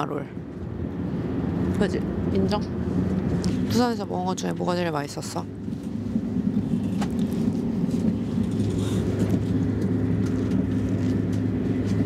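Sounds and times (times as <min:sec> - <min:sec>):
train interior rumble: 0:00.0 - 0:12.0.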